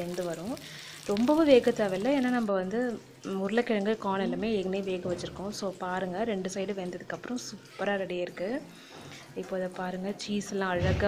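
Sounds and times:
woman talking: 0.0 - 8.7, 9.4 - 11.0
food sizzling in oil: 0.0 - 11.0.

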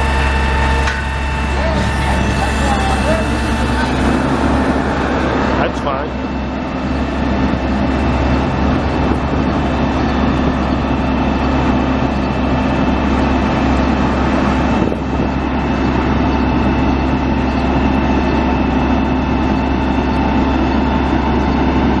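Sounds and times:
diesel truck engine idling: 0.0 - 22.0.

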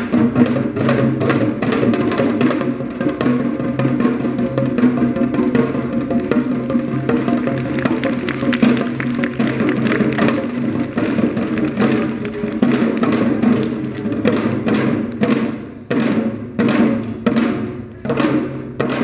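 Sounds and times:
hourglass drums struck rapidly: 0.0 - 19.0.

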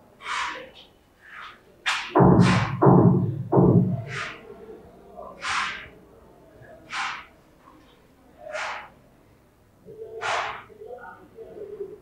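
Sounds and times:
marker writing on whiteboard: 3.9 - 4.4, 6.9 - 7.3, 8.5 - 8.9.

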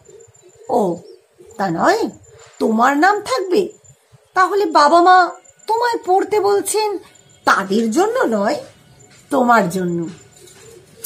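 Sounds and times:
faint steady tone: 0.0 - 11.0
woman speaking: 0.7 - 10.2.

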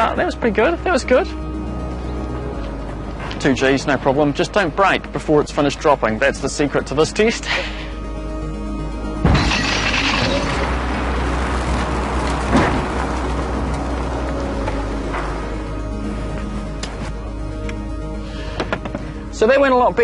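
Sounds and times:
background music: 0.0 - 20.0
sudden bang: 12.4 - 13.2
thump: 12.5 - 12.9.

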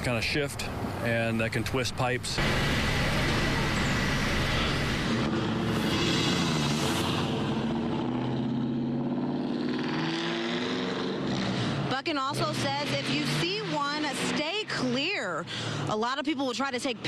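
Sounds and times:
heavy vehicle engines running: 0.0 - 17.0.

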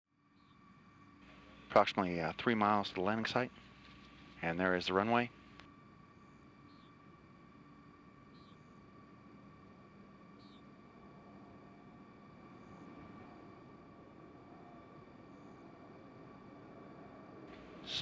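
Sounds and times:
thin steady hum: 0.1 - 18.0
faint high chirps: 0.2 - 1.8, 6.1 - 18.0
faint steady hiss: 0.2 - 18.0.

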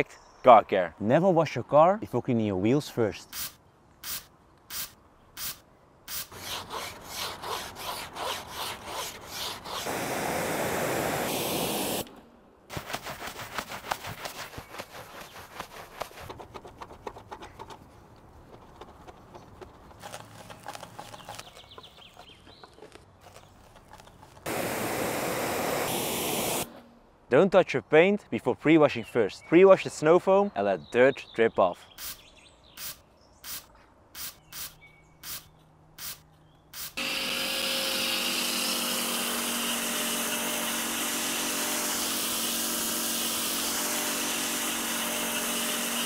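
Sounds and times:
spray bursts: 3.3 - 6.4, 9.7 - 14.7, 24.5 - 26.7, 32.0 - 32.2, 32.8 - 37.0
brush scrubbing a wet wheel: 12.7 - 17.2.

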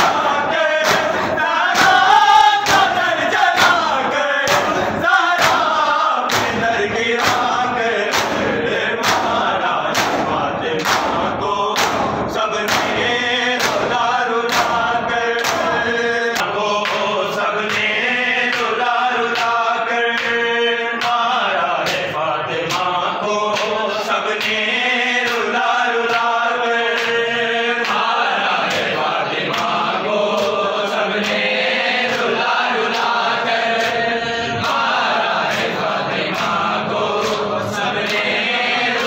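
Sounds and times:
chest-beating slaps: 0.0 - 17.9
men chanting a lament: 0.0 - 39.0.

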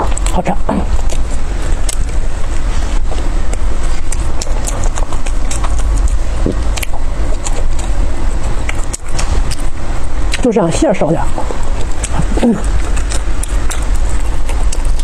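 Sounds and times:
chewing and mouth sounds: 0.0 - 15.0
loud low rumble: 0.0 - 15.0.

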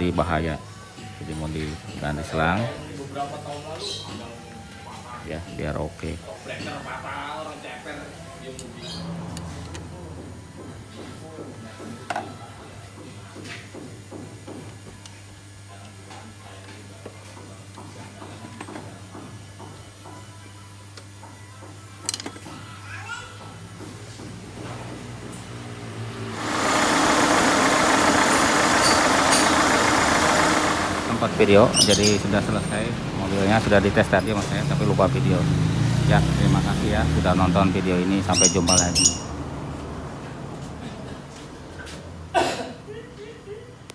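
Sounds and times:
car engine running: 26.2 - 36.5.

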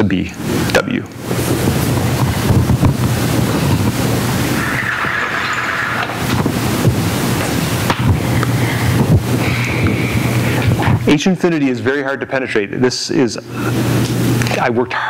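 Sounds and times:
steady rushing noise: 0.0 - 14.8
low hum: 0.4 - 14.5.

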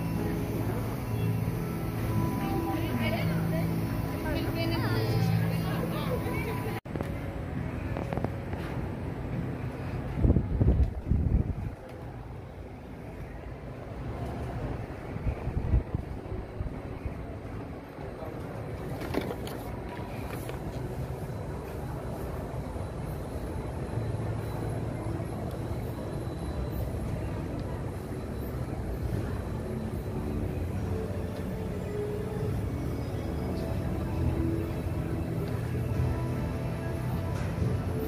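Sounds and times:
busy walkway background noise: 0.0 - 38.0
faint music: 0.0 - 38.0.

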